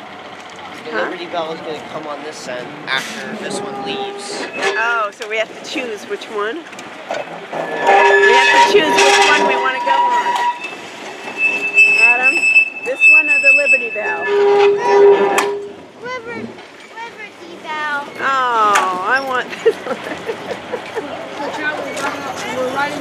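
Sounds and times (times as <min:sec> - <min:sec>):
people talking: 0:00.5 - 0:06.6, 0:07.9 - 0:10.4, 0:12.0 - 0:15.3, 0:16.0 - 0:23.0
trolley wheels squealing on track: 0:03.2 - 0:06.4, 0:07.1 - 0:15.9, 0:18.0 - 0:23.0.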